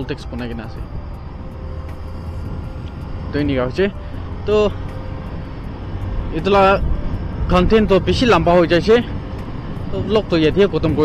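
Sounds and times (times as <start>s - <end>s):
wind and road noise: 0.0s - 11.0s.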